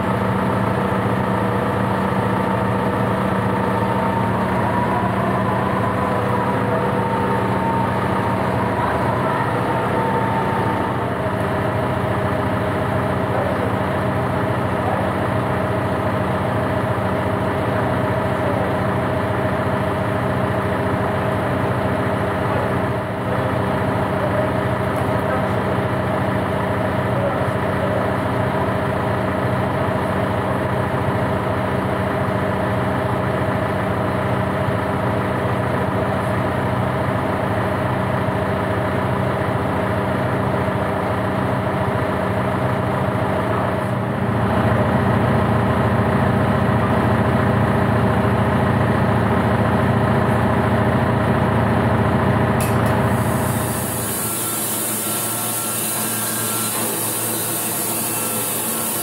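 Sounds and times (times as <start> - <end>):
tractor diesel engine idling: 0.0 - 53.8
band saw cutting log: 52.6 - 59.0.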